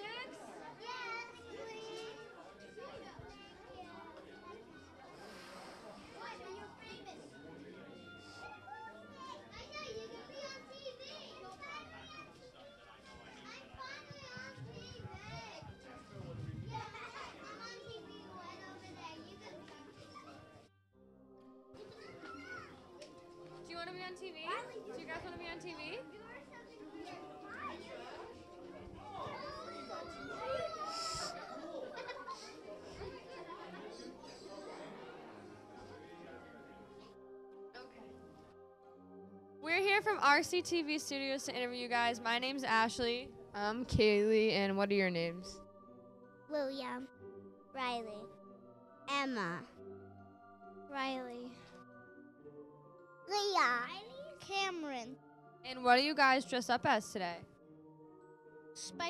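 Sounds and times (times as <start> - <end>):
young children chattering: 0.0 - 20.6, 24.4 - 36.1.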